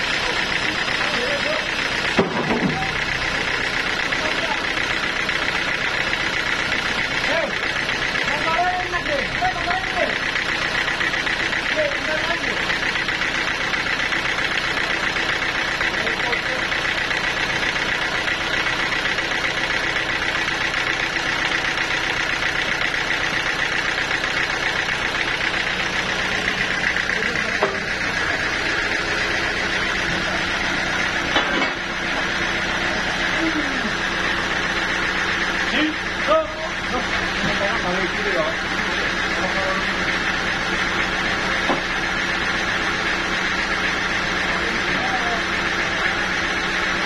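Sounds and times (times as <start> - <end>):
sawmill engine idling: 0.0 - 47.0.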